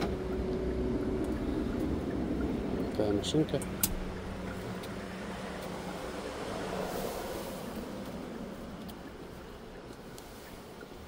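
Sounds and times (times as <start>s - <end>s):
vehicle cabin hum and rush: 0.0s - 11.0s.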